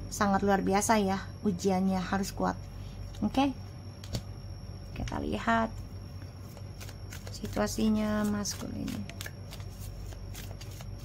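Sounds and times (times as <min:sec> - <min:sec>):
low steady hum: 0:00.0 - 0:11.0
cards being shuffled: 0:06.4 - 0:11.0.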